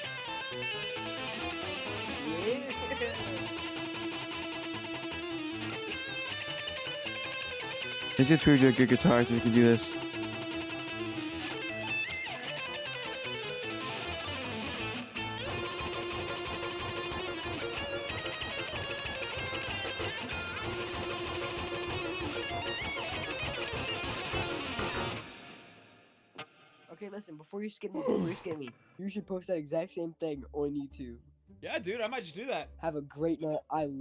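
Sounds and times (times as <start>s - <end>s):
fast electric guitar run: 9.6s - 25.3s.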